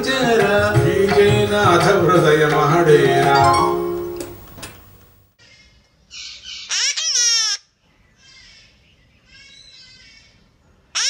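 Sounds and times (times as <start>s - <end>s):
macaw calling: 5.4s - 7.6s.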